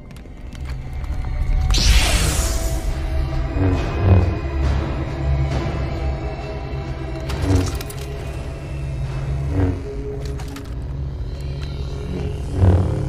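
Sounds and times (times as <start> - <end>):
sharp crackles: 0.0 - 4.4
background music: 0.0 - 13.0
lightsaber hum: 0.8 - 6.7, 7.3 - 13.0
lightsaber swinging swooshes: 1.7 - 4.4.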